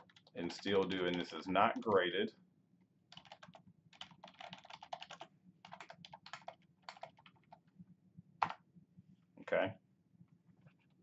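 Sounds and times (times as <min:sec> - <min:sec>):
computer keyboard typing: 0:00.0 - 0:02.1, 0:03.1 - 0:07.6.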